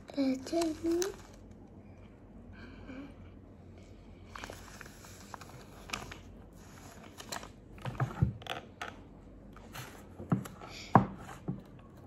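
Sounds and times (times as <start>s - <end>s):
paper rustling: 0.2s - 1.5s, 4.3s - 8.2s.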